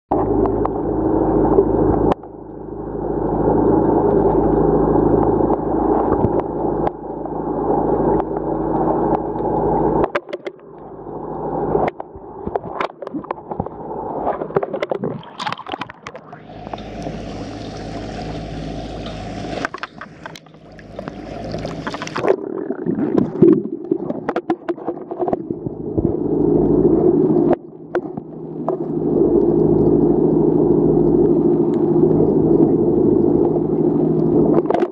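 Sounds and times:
boat motor humming underwater: 0.1 - 34.9
underwater clicks and crackles: 0.1 - 34.9.

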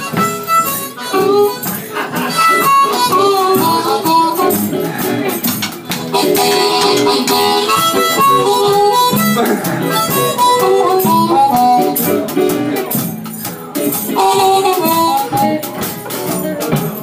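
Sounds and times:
harmonica solo: 0.0 - 5.4, 6.0 - 12.9, 14.0 - 16.0
live blues band: 0.0 - 17.0.

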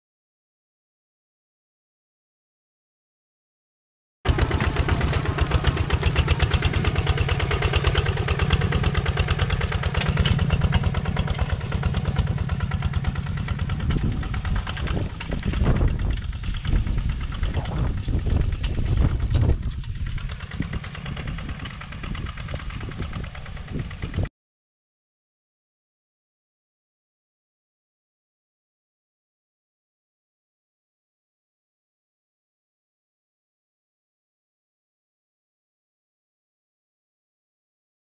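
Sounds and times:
tractor engine chugging: 4.3 - 24.3.

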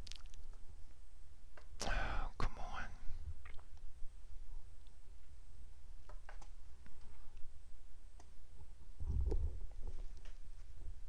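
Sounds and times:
man's whispered breath: 1.8 - 3.2.

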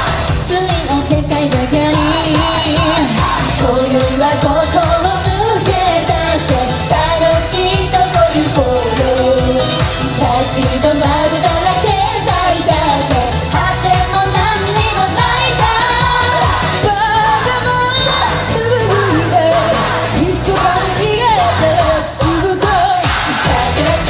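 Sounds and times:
loud backing music: 0.0 - 24.0
women singing pop song: 0.0 - 24.0.

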